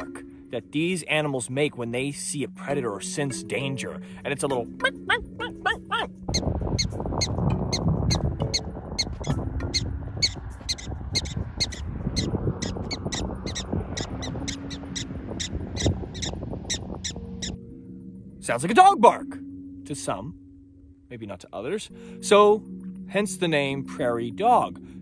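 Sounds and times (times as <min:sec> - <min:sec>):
prairie dog alarm chirps: 0:05.2 - 0:17.6
steady low rumbling: 0:06.2 - 0:18.6.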